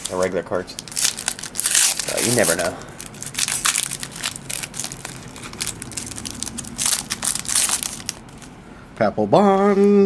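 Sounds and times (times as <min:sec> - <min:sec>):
foil wrapper crinkling: 0:00.0 - 0:08.5.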